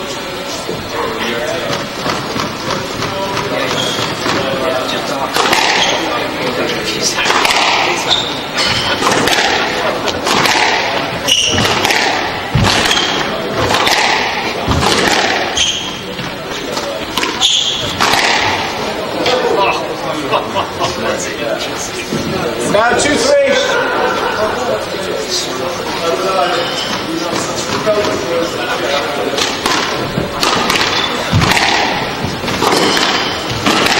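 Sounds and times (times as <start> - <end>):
sneakers squeaking on wooden floor: 1.6 - 4.7, 5.6 - 6.2, 7.9 - 9.2, 11.1 - 11.8, 12.5 - 14.1, 14.7 - 18.1, 26.4 - 28.3, 29.4 - 33.8
squash ball cracking off racquets: 1.6 - 19.4, 29.2 - 33.9.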